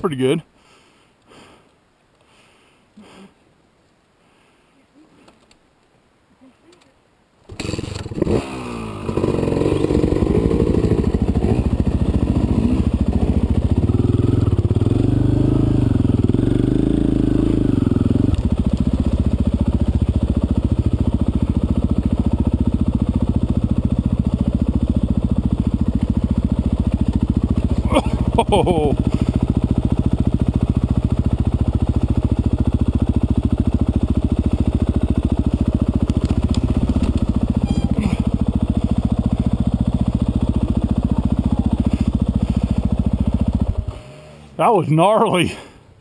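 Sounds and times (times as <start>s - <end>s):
dirt bike engine revving: 7.5s - 45.3s.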